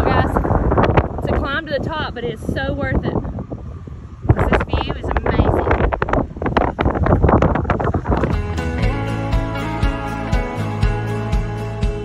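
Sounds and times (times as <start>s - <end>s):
wind buffeting microphone: 0.0s - 12.0s
background music with steady beat: 8.3s - 12.0s.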